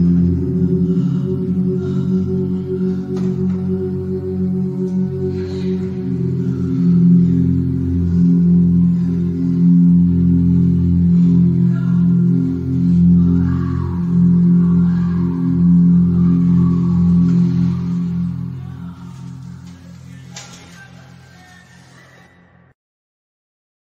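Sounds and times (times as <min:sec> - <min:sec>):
electronic keyboard low chords: 0:00.0 - 0:21.4.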